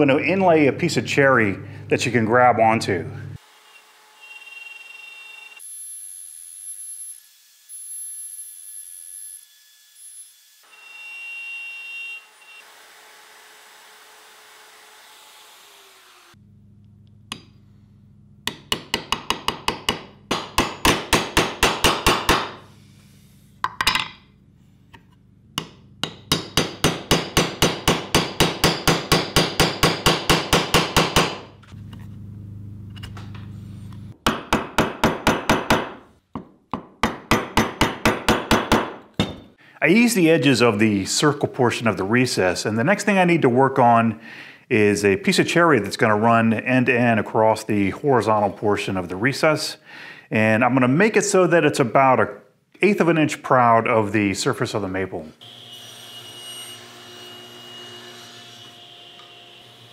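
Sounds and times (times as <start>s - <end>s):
wood chisel tapping: 18.5s - 22.5s, 34.2s - 39.4s.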